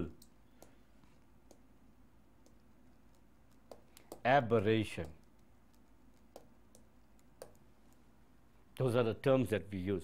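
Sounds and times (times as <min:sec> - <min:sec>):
stylus clicks on tablet: 0:02.4 - 0:04.3, 0:05.0 - 0:07.6.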